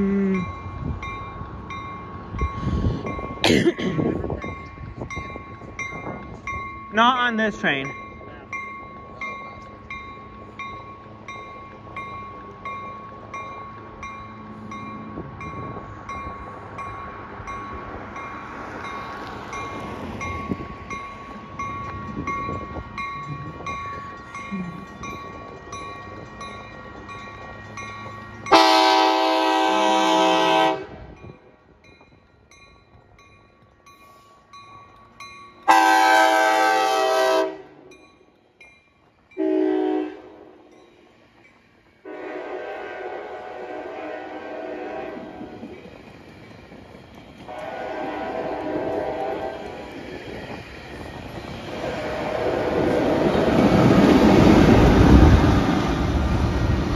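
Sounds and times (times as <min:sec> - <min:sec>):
train rumbling: 0:00.0 - 0:56.9
crossing bell ringing: 0:00.4 - 0:56.9
train horn blasts: 0:28.5 - 0:31.2, 0:35.7 - 0:37.9, 0:39.4 - 0:40.6, 0:42.0 - 0:45.6, 0:47.5 - 0:49.8, 0:51.7 - 0:53.2.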